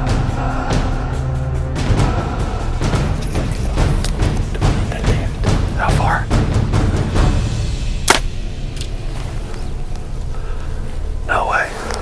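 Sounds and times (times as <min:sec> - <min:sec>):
bow release crack: 0:08.0 - 0:09.6.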